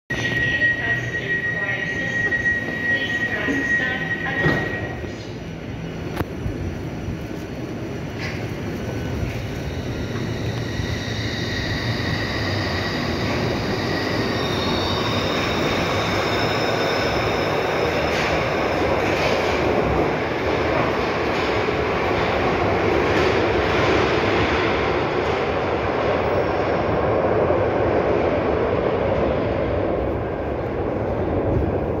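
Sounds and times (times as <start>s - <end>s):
train wheels rumbling on rail: 1.1s - 32.0s.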